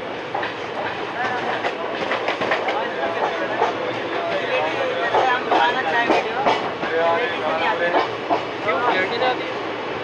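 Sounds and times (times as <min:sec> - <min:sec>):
train rumble: 0:00.0 - 0:10.0
train wheels clattering over joints: 0:00.3 - 0:09.3.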